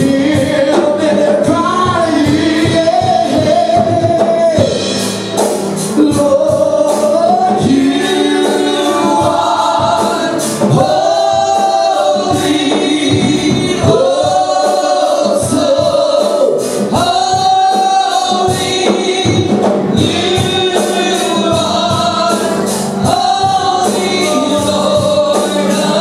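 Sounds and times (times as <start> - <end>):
group singing gospel worship: 0.0 - 26.0.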